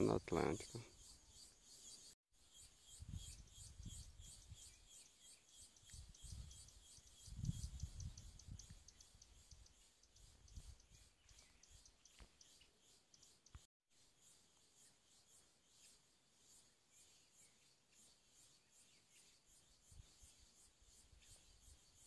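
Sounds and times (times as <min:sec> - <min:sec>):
high insect chirping: 0:00.0 - 0:13.6.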